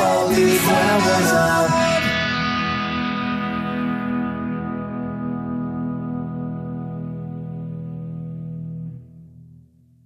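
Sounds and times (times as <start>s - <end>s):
distorted electric guitar chord: 0.0s - 9.6s.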